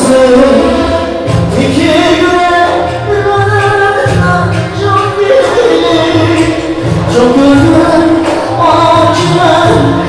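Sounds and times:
person singing: 0.0s - 10.0s
pulsing bass line: 0.0s - 10.0s.

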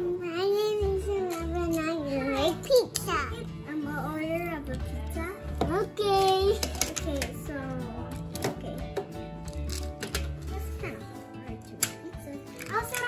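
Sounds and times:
young child's voice: 0.0s - 8.8s, 10.5s - 13.0s.

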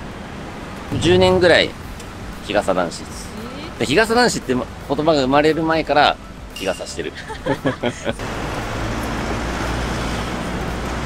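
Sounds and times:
road vehicles rumbling: 0.0s - 11.0s.

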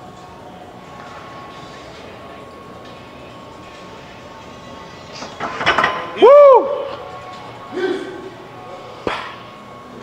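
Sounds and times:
gym room noise: 0.0s - 10.0s
barbell plates clanking: 5.2s - 6.2s.

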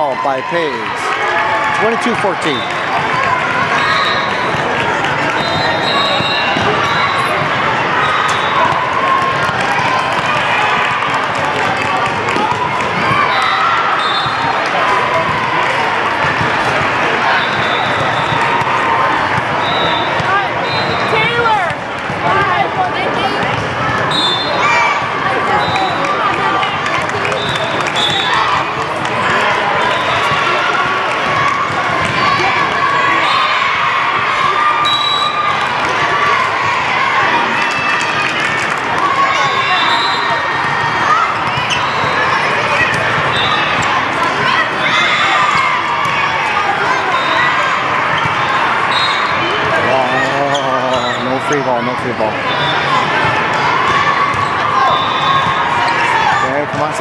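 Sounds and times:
many overlapping voices: 0.0s - 57.0s
volleyballs thudding and bouncing: 0.9s - 13.4s, 14.2s - 24.1s, 25.0s - 33.1s, 40.3s - 47.0s.

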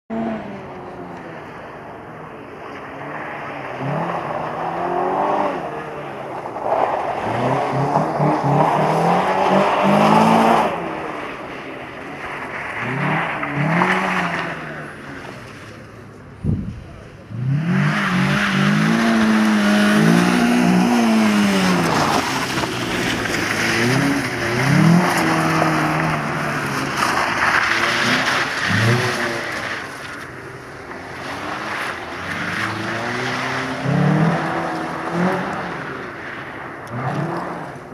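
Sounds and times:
rally car engine revving: 2.4s - 37.9s.

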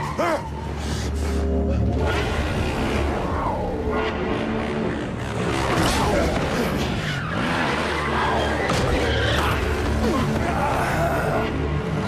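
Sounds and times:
tyre squealing and skidding: 0.0s - 1.2s, 5.7s - 12.0s.

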